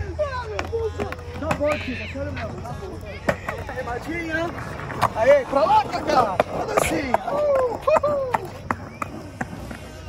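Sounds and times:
skateboard rolling on concrete: 0.0s - 10.0s.

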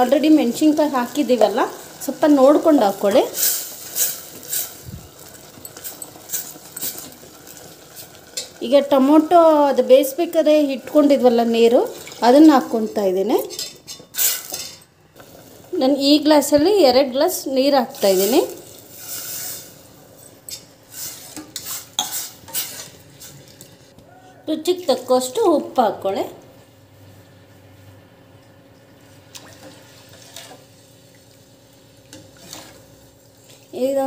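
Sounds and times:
faint sizzle of frying: 0.0s - 34.0s
ladle scraping a steel pot: 13.5s - 14.8s, 20.5s - 23.4s.

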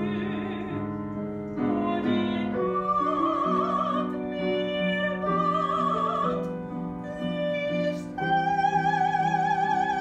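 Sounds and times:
woman singing operatically: 0.0s - 0.9s, 1.6s - 10.0s
grand piano: 0.0s - 10.0s.

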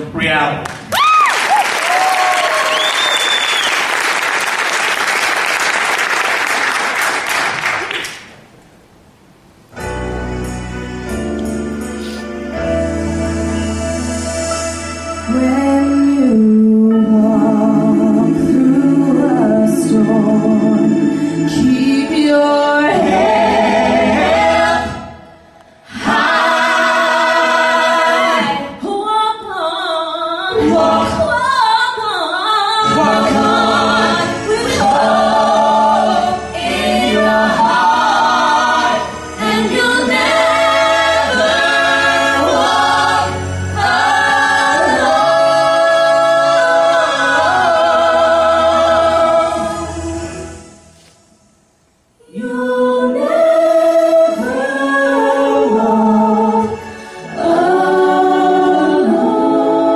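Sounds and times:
group singing in close harmony: 15.3s - 29.4s, 30.5s - 32.0s, 32.8s - 50.9s, 52.2s - 59.9s.

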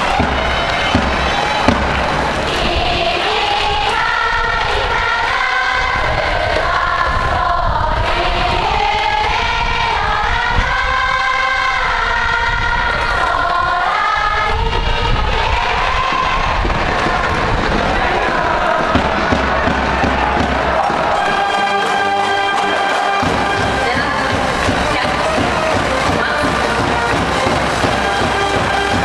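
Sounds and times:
band playing a melody: 0.0s - 3.2s, 19.2s - 29.0s
wind rumble on microphone: 0.0s - 21.3s
crowd singing along: 0.0s - 29.0s.

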